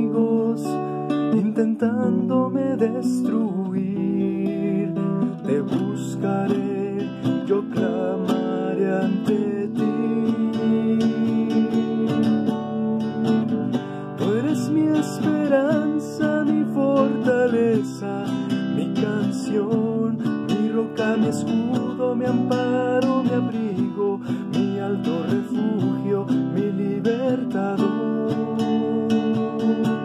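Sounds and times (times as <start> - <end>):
acoustic guitar strumming: 0.0 - 30.0
person singing: 0.0 - 30.0.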